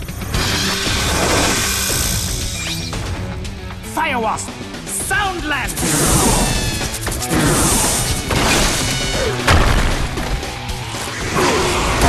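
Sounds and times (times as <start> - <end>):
dramatic music score: 0.0 - 12.0.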